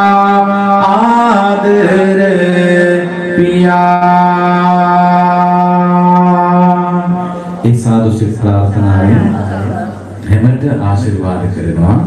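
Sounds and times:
monk chanting into a microphone: 0:00.0 - 0:12.0.

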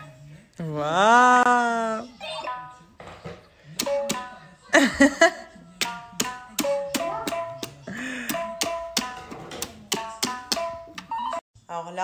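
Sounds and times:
hand slapping toy drum pad: 0:03.8 - 0:04.3, 0:05.8 - 0:11.1.

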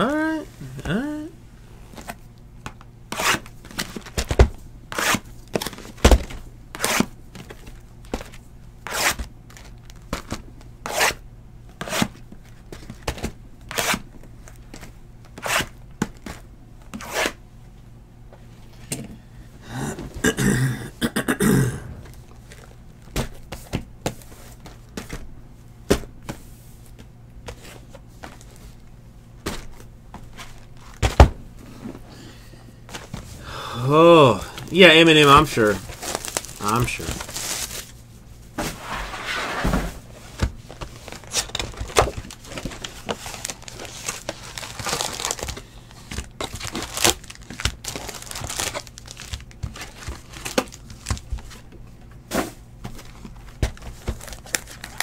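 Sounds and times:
cardboard rustling: 0:34.6 - 0:38.0.

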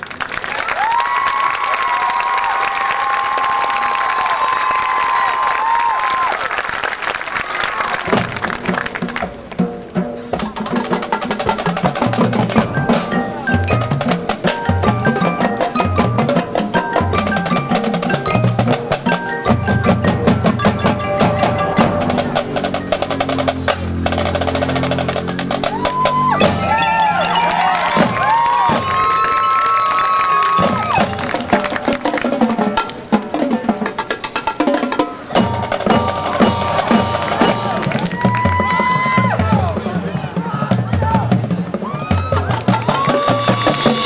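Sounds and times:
drumline rhythmic strokes: 0:00.0 - 0:44.0
mallet percussion: 0:08.0 - 0:29.3, 0:30.5 - 0:44.0
sliding pitched notes: 0:11.4 - 0:28.8
held low notes: 0:12.0 - 0:28.1.

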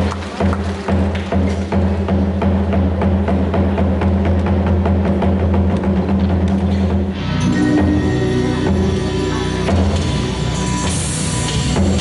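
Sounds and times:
percussion beat: 0:00.0 - 0:12.0
loud low drone: 0:07.1 - 0:12.0.

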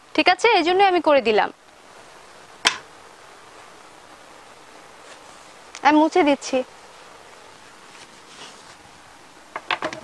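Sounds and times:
faint room hiss: 0:00.0 - 0:10.0.

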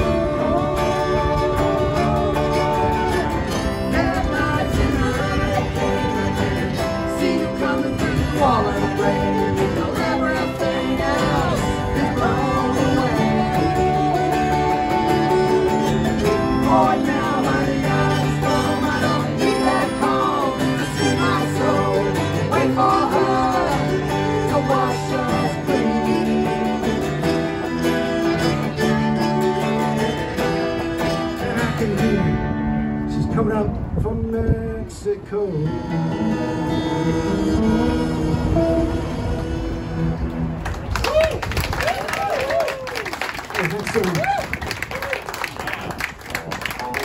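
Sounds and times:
cello: 0:00.0 - 0:31.8
fiddle: 0:00.0 - 0:32.4
strummed acoustic guitar: 0:00.0 - 0:40.6.

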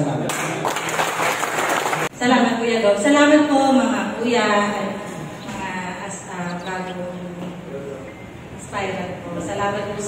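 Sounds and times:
crowd applauding: 0:00.5 - 0:02.1.

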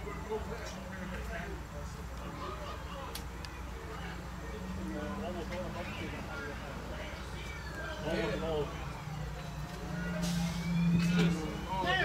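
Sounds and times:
diesel engine drone: 0:03.5 - 0:12.0
faint rising whine: 0:07.5 - 0:12.0.

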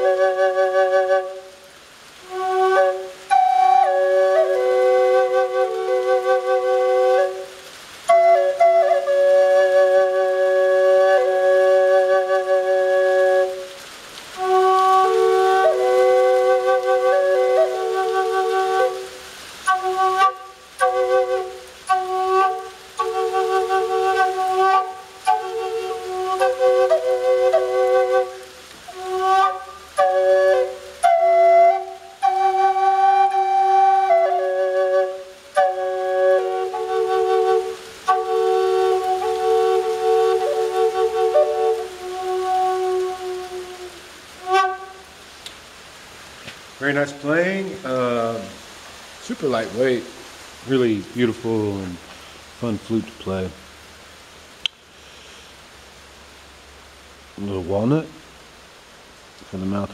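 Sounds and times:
drone flute playing slow melody: 0:00.0 - 0:45.2.

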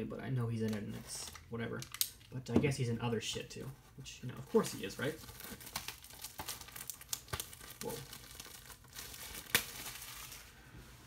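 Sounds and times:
plastic wrap crinkling and tearing: 0:04.5 - 0:10.6
plastic wrap snapping: 0:05.1 - 0:10.5.

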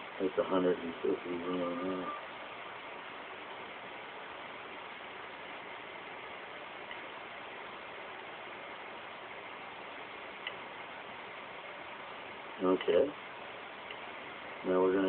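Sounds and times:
recording hiss: 0:00.0 - 0:15.0.

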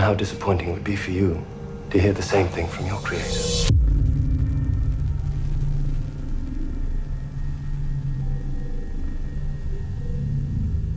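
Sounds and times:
deep cinematic drone: 0:00.0 - 0:10.9.

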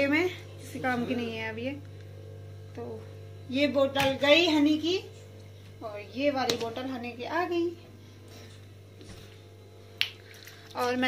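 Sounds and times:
woman speaking: 0:00.0 - 0:01.9, 0:02.7 - 0:05.2, 0:05.8 - 0:07.9, 0:10.7 - 0:11.0
low steady hum: 0:00.0 - 0:11.0.

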